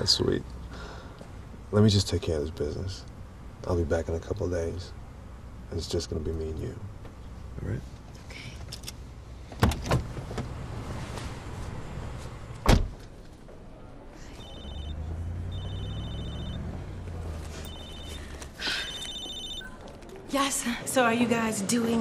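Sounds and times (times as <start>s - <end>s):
car door slamming: 12.6s - 13.0s
mobile phone ringing: 14.2s - 20.1s.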